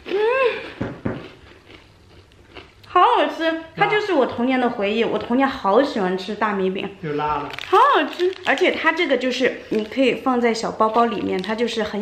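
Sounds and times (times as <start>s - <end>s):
person chewing rice cracker: 0.0s - 2.9s.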